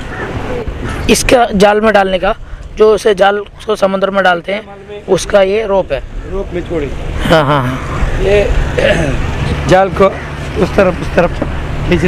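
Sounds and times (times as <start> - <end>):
voices speaking: 0.0 - 12.0.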